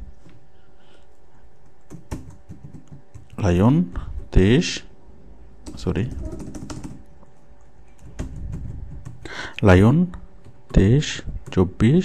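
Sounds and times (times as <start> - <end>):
faint steady hum: 0.0 - 12.0
computer keyboard typing: 1.7 - 3.4, 5.6 - 9.3.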